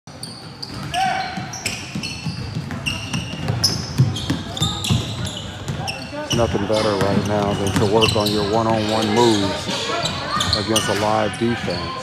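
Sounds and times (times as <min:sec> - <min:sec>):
sneakers squeaking: 0:00.1 - 0:12.0
basketball bouncing: 0:00.7 - 0:08.9.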